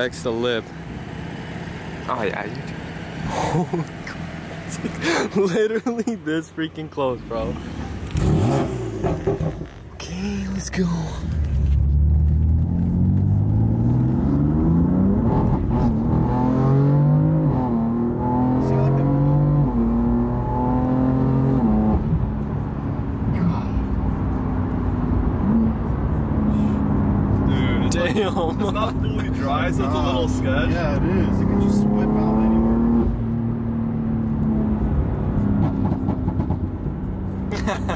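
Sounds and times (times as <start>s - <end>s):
car engine accelerating through gears: 7.5s - 9.8s, 11.3s - 27.9s, 29.4s - 37.5s.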